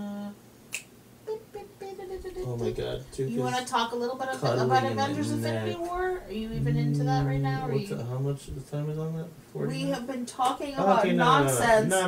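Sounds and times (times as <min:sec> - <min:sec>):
drawn-out vocal uh: 0:04.4 - 0:07.7.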